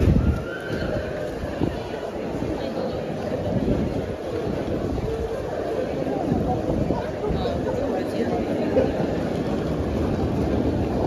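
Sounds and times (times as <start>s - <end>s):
crowd talking indistinctly: 0.0s - 11.0s.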